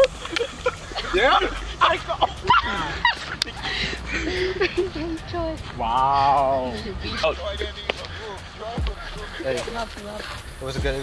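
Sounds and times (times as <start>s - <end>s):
people yelping and shouting: 0.0s - 10.5s.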